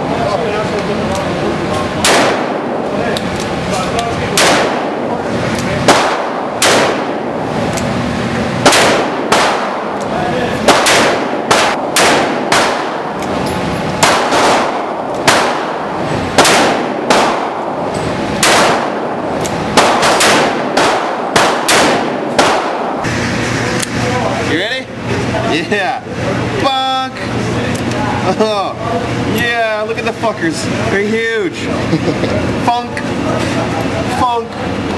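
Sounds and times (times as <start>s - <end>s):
handgun shots echoing indoors: 2.0s - 3.4s, 4.3s - 7.8s, 8.6s - 23.1s.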